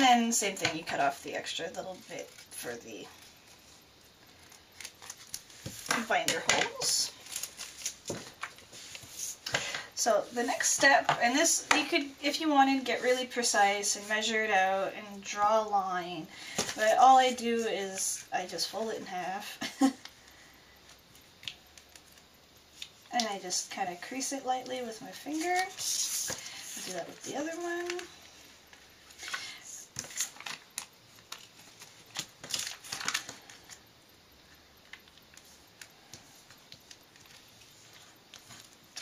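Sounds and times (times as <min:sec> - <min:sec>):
plastic sheet being folded: 0:00.0 - 0:14.6, 0:29.0 - 0:33.8.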